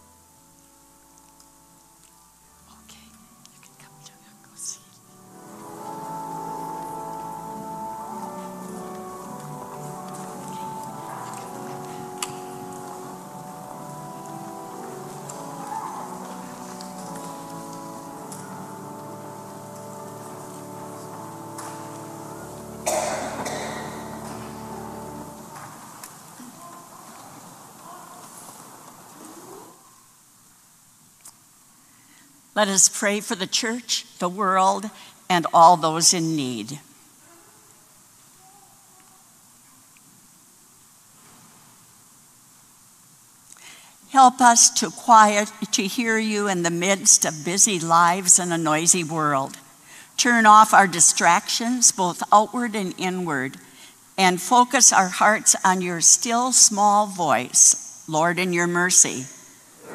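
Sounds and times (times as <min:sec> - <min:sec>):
soft organ chords: 0:00.0 - 0:27.8.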